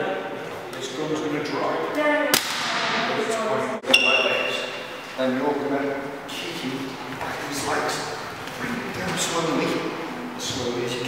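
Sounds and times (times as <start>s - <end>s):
faint voices in large room: 0.0s - 11.0s
sharp smack: 2.3s - 3.1s.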